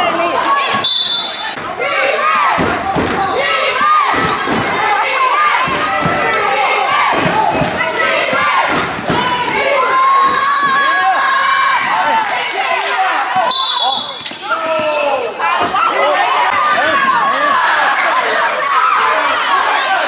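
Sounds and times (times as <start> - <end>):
sneakers squeaking: 0.0 - 1.7, 2.4 - 12.0, 12.9 - 16.0
referee's whistle: 0.8 - 1.6, 13.5 - 14.7.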